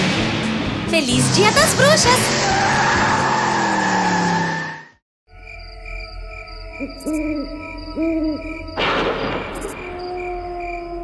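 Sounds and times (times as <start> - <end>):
spooky background music: 5.3 - 11.0
owl hooting: 6.8 - 8.7
loud thunder crash: 8.8 - 9.9.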